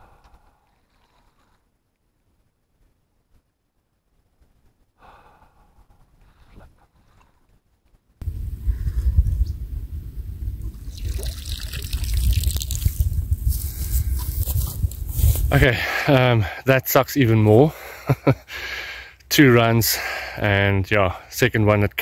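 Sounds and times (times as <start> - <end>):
heavy low rumble: 8.2 - 16.2
water trickling: 10.6 - 13.2.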